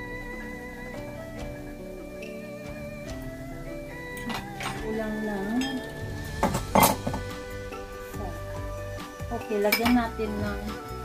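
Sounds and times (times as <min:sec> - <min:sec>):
background music: 0:00.0 - 0:11.0
utensils knocking cookware: 0:05.6 - 0:07.3.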